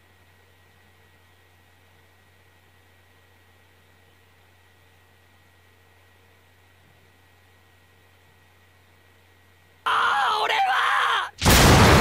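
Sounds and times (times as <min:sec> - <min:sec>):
person yelling: 0:09.9 - 0:11.4.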